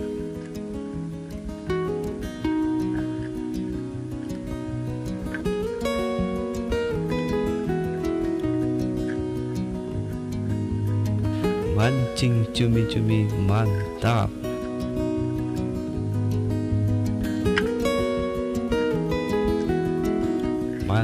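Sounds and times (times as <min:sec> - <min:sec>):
plucked acoustic guitar melody: 0:00.0 - 0:21.0.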